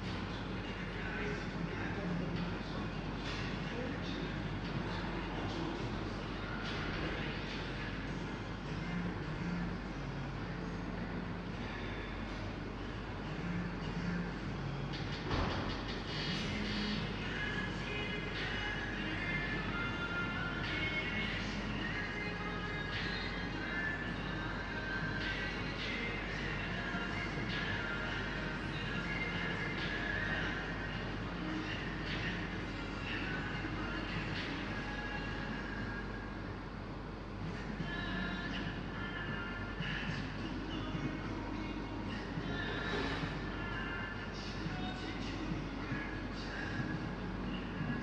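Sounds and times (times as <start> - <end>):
coffee shop room noise: 0.0 - 48.0
steady hum: 0.0 - 48.0.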